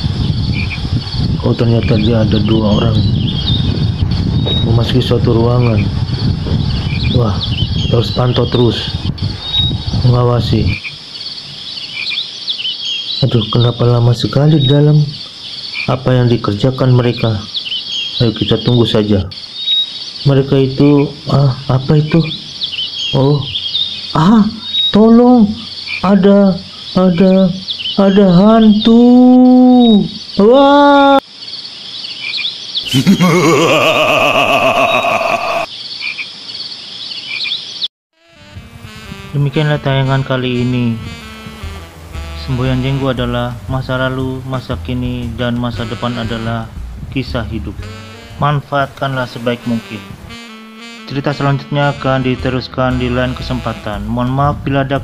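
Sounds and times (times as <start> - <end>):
crickets chirping: 0.0 - 37.8
music: 38.2 - 55.0.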